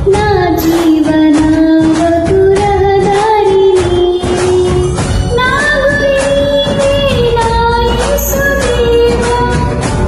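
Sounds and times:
karaoke backing track with beat: 0:00.0 - 0:10.0.

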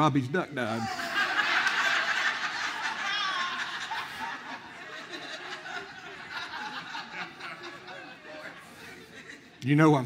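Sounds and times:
congregation laughing: 0:00.6 - 0:09.6.

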